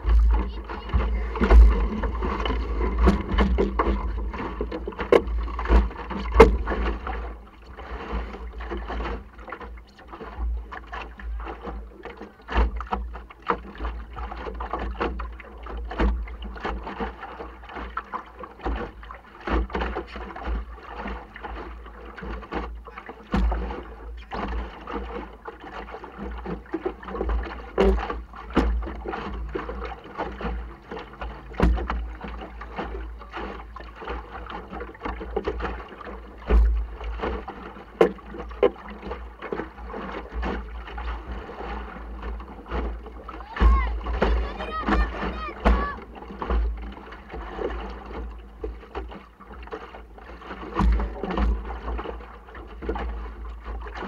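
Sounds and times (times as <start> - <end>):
hull and rigging knocks: 0.0 - 54.0
water splashing against hull: 0.0 - 54.0.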